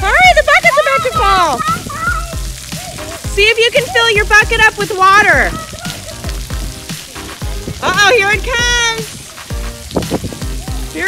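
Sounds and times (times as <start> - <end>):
water spraying onto wet concrete: 0.0 - 11.0.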